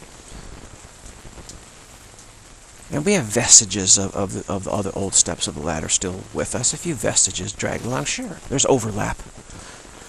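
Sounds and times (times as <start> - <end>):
rain falling: 0.0 - 10.0.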